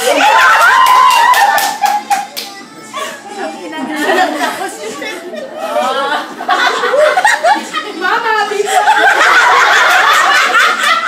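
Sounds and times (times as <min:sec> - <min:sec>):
people chattering: 0:02.0 - 0:11.0.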